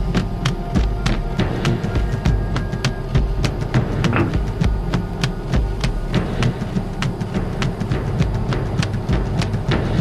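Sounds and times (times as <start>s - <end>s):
low drum beat: 0.0s - 10.0s
sharp percussion strikes: 0.0s - 10.0s.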